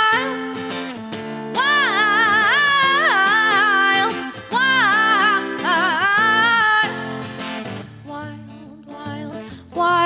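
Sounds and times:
woman singing with vibrato: 0.0s - 0.8s, 1.5s - 10.0s
acoustic guitar playing: 0.0s - 10.0s.

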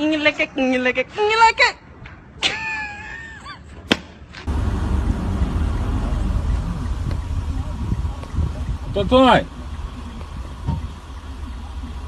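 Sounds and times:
car wind and road noise: 3.7s - 12.0s.

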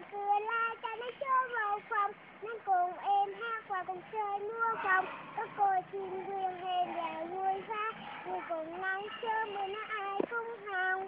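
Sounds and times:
girl singing unaccompanied: 0.0s - 11.0s.

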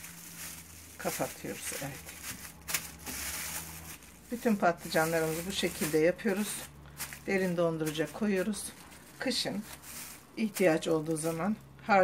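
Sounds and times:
plastic bag crinkling: 0.0s - 11.8s.

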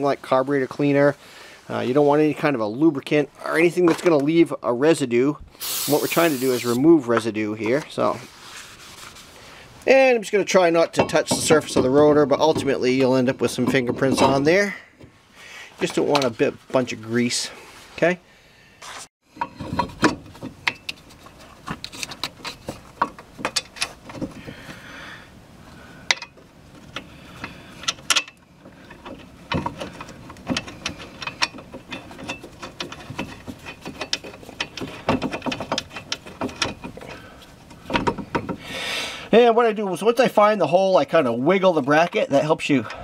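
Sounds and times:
metallic clicks and knocks: 26.1s - 37.2s, 37.8s - 38.6s.

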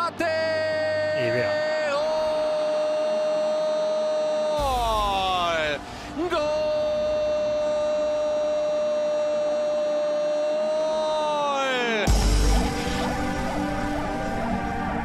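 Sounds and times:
man shouting drawn-out goal cry: 0.0s - 12.1s
man gasping for breath: 5.8s - 6.2s.

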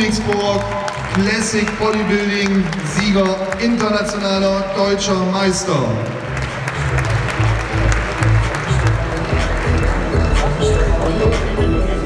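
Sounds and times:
audience applauding: 0.0s - 11.1s
music with heavy bass: 6.2s - 12.0s.

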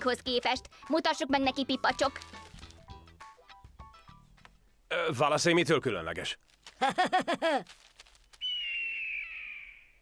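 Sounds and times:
eagle screech: 8.4s - 9.9s.

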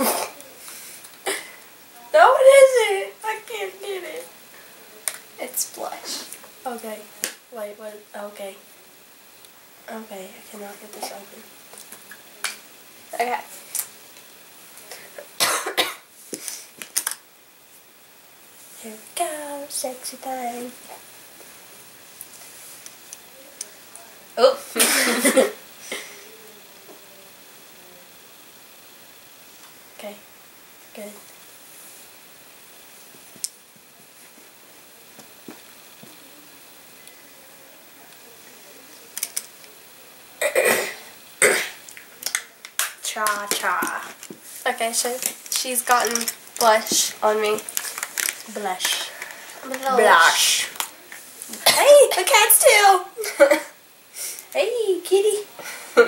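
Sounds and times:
person coughing: 0.0s - 0.4s, 15.4s - 16.0s, 24.8s - 26.1s, 40.4s - 41.8s.

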